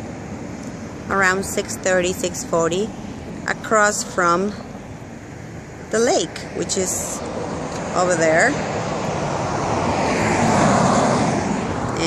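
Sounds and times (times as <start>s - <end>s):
car passing: 0.0s - 12.0s.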